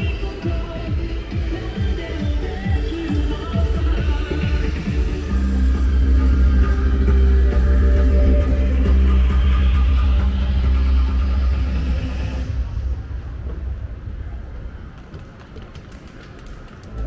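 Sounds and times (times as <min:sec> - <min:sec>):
loud music with heavy bass: 0:00.0 - 0:13.2.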